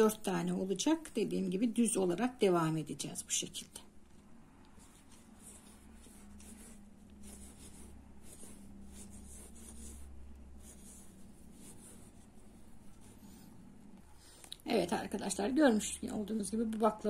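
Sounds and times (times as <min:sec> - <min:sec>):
low steady hum: 0:00.0 - 0:17.0
crochet hook scratching thread: 0:03.5 - 0:14.1.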